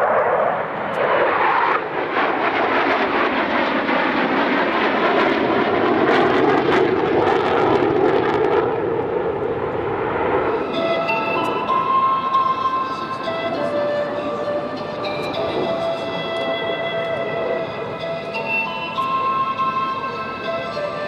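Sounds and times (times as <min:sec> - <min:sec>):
jet engine crackling: 0:00.0 - 0:20.2
jet engines roaring past: 0:00.0 - 0:21.0.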